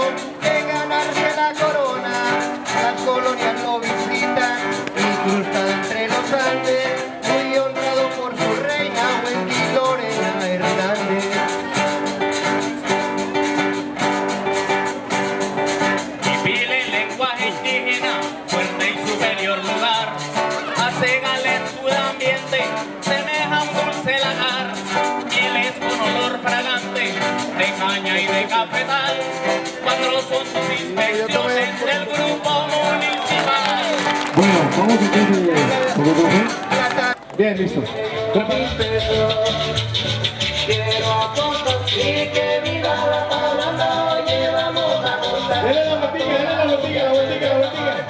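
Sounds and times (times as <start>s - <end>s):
man singing into a microphone: 0.0s - 13.8s, 15.9s - 48.0s
acoustic guitars strumming: 0.0s - 48.0s.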